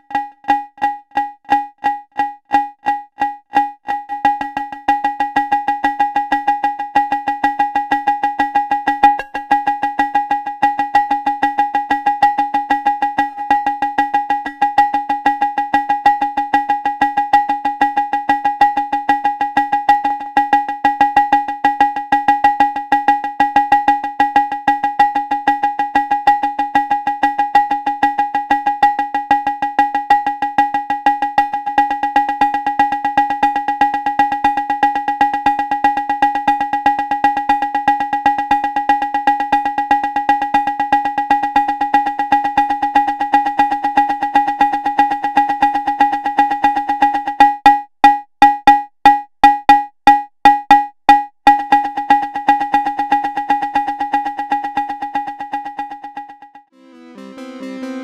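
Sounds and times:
synthesized wood-block-like drum hits: 0.1 - 10.1, 31.4 - 56.5
steady pitched delay ring: 0.1 - 13.9.

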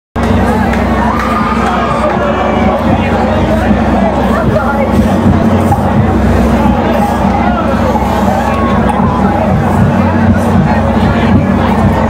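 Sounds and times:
crowd shouting and chattering: 0.2 - 12.0
low hum: 0.2 - 12.0.

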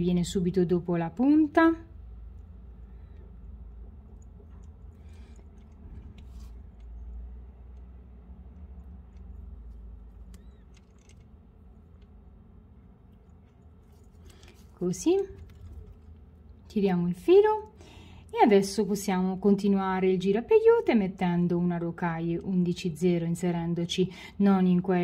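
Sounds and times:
low steady hum: 0.0 - 25.0
beading rustles and ticks: 2.2 - 16.8.

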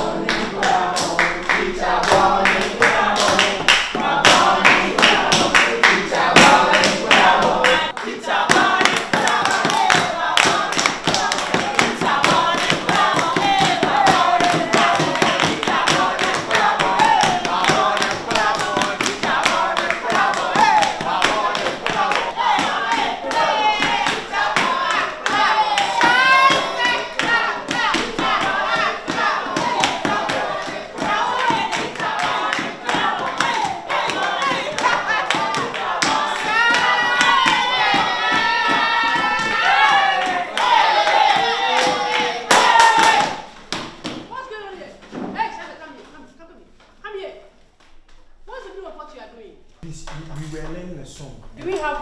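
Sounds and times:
young voices singing together: 0.0 - 44.2
hand claps and knocks: 8.5 - 44.3.

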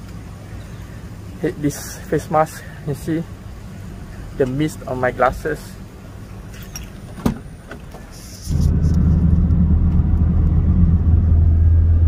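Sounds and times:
car engine running inside cabin: 8.4 - 12.0.

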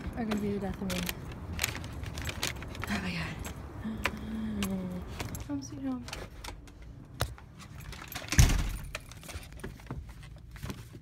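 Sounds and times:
metallic jangling and clinking: 7.6 - 9.6.

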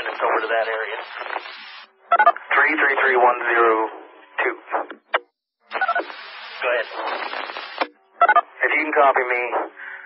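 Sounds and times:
garbled radio voice: 0.0 - 1.4, 5.7 - 7.3
radio static hiss with muffled voice: 0.0 - 5.0, 5.7 - 10.0
radio click: 6.9 - 7.9.

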